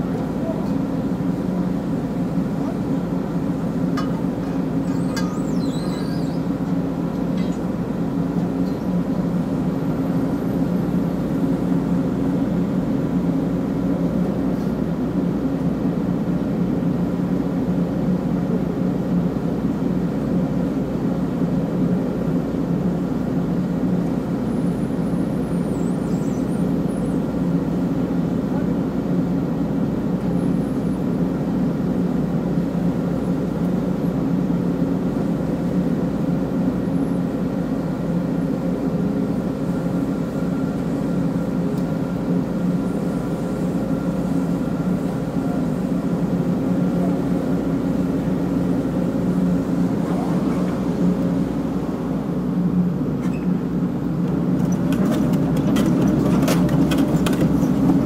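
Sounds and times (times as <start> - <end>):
diesel engine running: 0.0 - 58.0.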